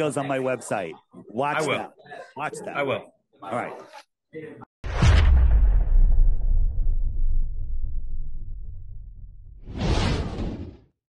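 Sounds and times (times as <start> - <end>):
deep rumble: 4.9 - 10.8
whoosh: 4.9 - 10.9.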